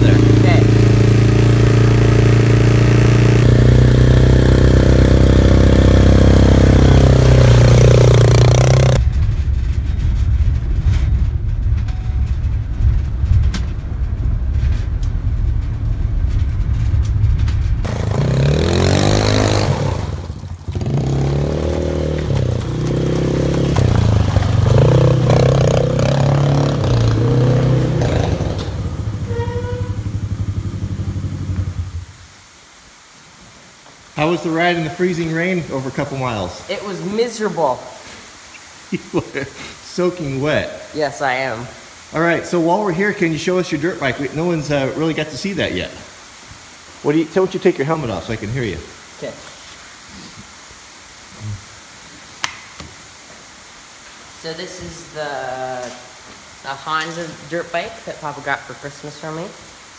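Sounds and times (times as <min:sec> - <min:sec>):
quad engine idling and revving: 0:00.0 - 0:09.0, 0:17.9 - 0:29.3, 0:30.0 - 0:32.0.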